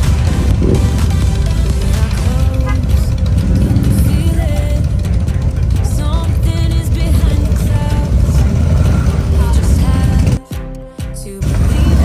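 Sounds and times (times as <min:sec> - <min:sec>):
motorcycle engines rumbling: 0:00.0 - 0:10.4, 0:11.4 - 0:12.0.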